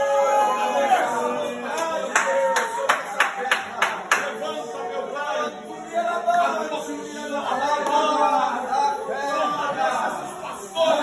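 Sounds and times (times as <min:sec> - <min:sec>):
sharp hand claps: 0:01.8 - 0:04.4.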